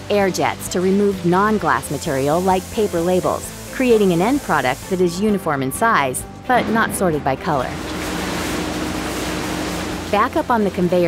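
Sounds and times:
sorting machinery rush: 0:06.7 - 0:11.0.

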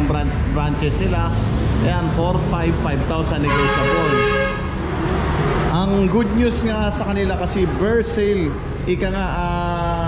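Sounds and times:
low rumble of road traffic: 0:00.0 - 0:10.0
vehicle horn: 0:03.4 - 0:04.8.

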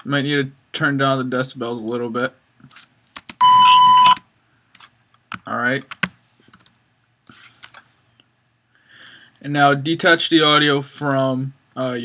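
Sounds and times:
censor bleep tone: 0:03.4 - 0:04.2.

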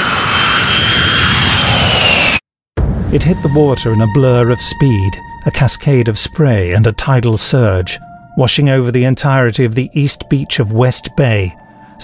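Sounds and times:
jet aircraft roar with whine: 0:00.0 - 0:02.5.

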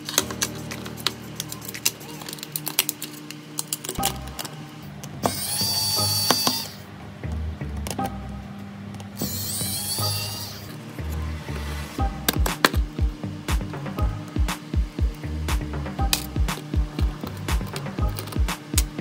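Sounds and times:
electric screwdriver whirring: 0:05.3 - 0:06.8, 0:09.2 - 0:10.7.

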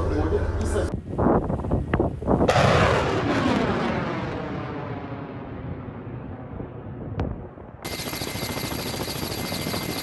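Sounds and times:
rushing roar of missile: 0:02.5 - 0:06.4.

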